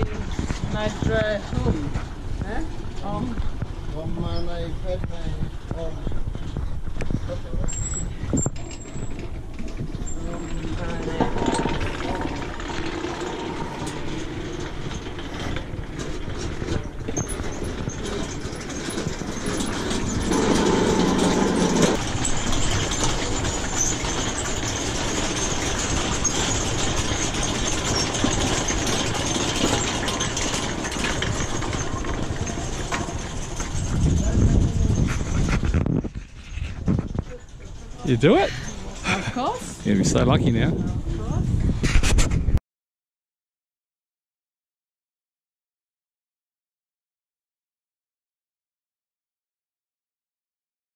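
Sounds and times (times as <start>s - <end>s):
metal prayer wheels rumbling: 0.0s - 41.4s
wind buffeting microphone: 0.0s - 42.6s.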